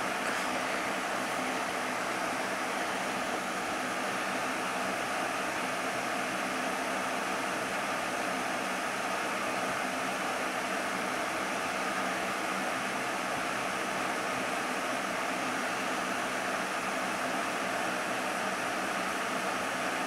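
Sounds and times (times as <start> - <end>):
electric fan running: 0.0 - 20.0.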